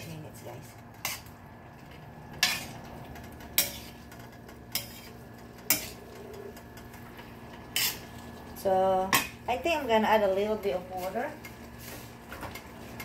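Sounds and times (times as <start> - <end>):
metal tongs clacking against pan: 0.7 - 1.3, 2.3 - 7.0.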